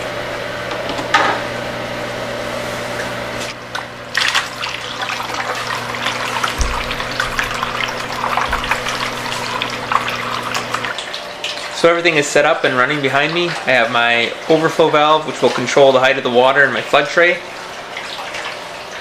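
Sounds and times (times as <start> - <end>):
water pump humming: 0.0 - 19.0
water rushing and splashing: 4.2 - 11.7.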